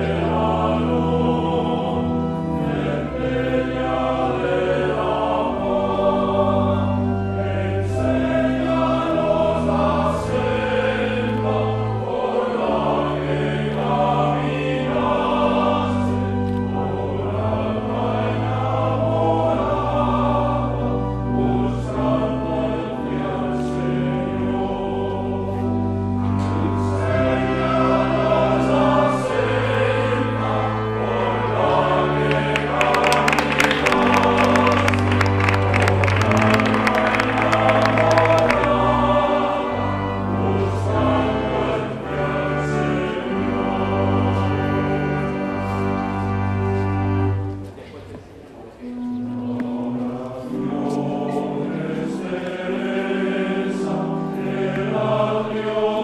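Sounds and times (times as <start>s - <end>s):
choir singing held chords: 0.0s - 47.8s, 48.8s - 56.0s.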